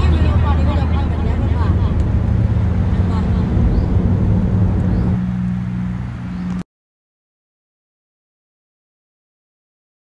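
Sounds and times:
car road noise rumble: 0.0s - 6.6s.

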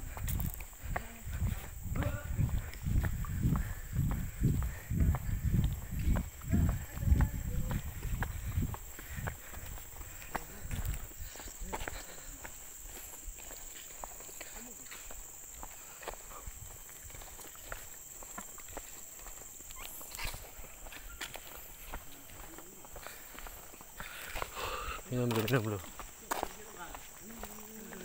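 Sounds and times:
footsteps on concrete: 0.0s - 28.0s.

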